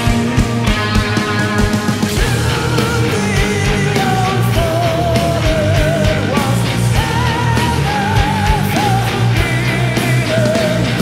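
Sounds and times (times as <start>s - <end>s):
bass guitar: 0.0s - 11.0s
distorted electric guitars: 0.0s - 11.0s
drum kit beat: 0.0s - 11.0s.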